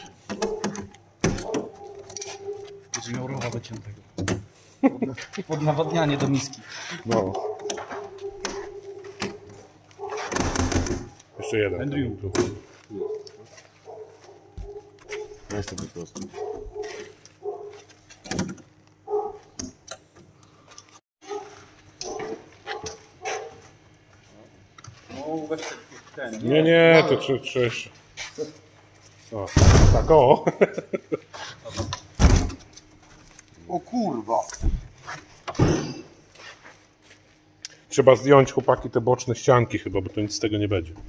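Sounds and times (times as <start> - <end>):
dog yelping: 0.4 - 0.8, 1.4 - 2.9, 7.3 - 10.3, 12.9 - 15.4, 16.3 - 17.8, 19.1 - 19.5, 21.2 - 23.6.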